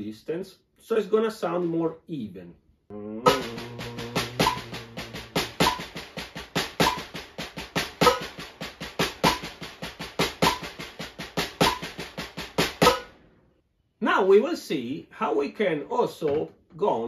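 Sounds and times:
drumsticks on practice pad: 3.3 - 13.2.

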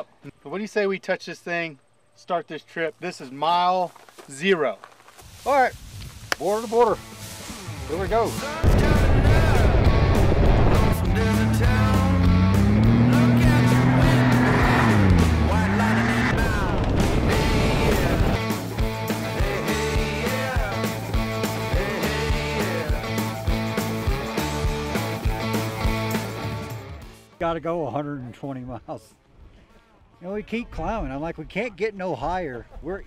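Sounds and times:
engine revving: 7.2 - 19.0
music with steady beat: 17.2 - 27.3.

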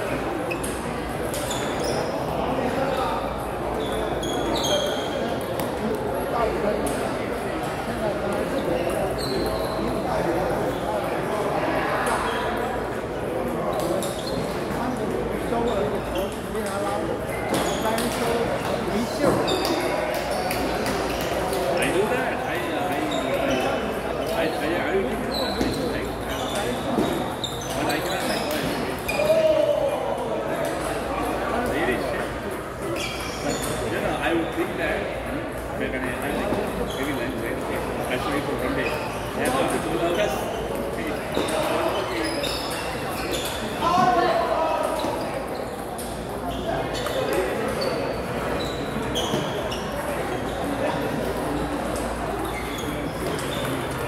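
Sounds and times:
murmur of voices in hall: 0.0 - 54.0.

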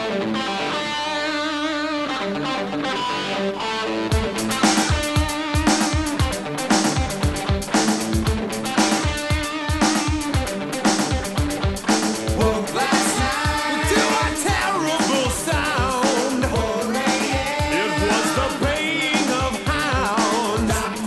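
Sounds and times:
electric guitar chords: 0.0 - 21.0
heavy drum beat: 4.1 - 21.0.

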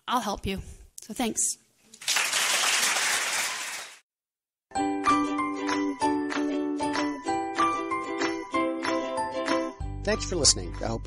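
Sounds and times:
audience applauding: 2.0 - 4.0.

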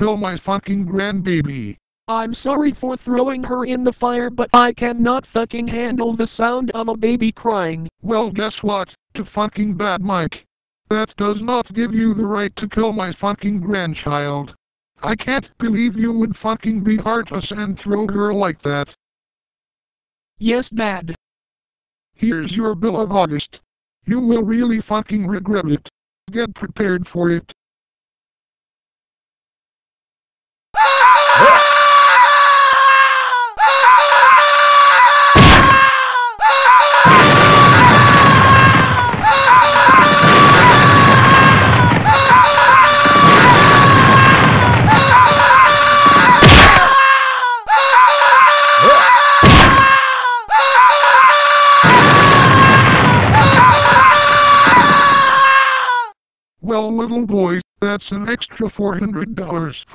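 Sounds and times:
cartoon character screaming: 30.8 - 56.2.

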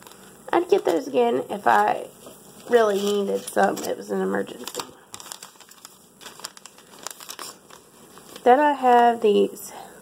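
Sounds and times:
plastic snack bags crinkling: 0.0 - 2.0, 2.6 - 9.2.

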